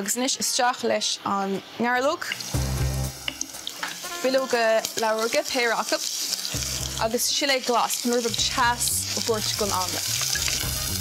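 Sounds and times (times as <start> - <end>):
garlic sizzling in oil: 1.4 - 11.0
person talking: 7.0 - 10.0.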